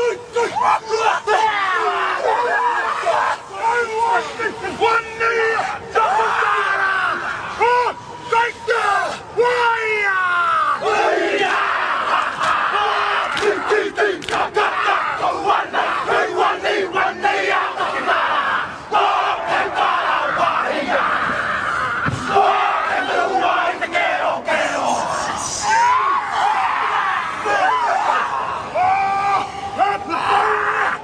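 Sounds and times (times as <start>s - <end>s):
men chanting and shouting: 0.0s - 31.0s.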